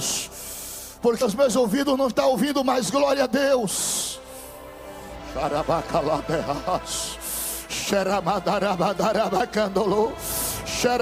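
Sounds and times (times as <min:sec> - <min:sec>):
man vocalising into microphone: 0:05.3 - 0:10.2.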